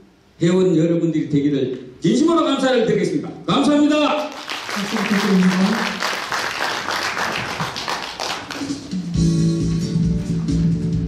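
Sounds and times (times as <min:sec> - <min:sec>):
audience applauding: 0:04.2 - 0:09.2
music: 0:08.0 - 0:11.0.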